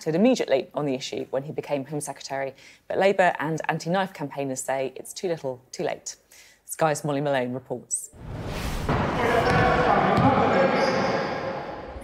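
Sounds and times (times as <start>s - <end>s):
players' voices echoing: 8.9s - 12.0s.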